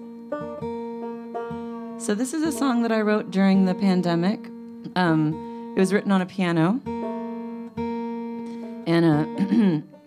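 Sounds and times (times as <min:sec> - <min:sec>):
acoustic guitar note ringing: 0:00.0 - 0:10.0.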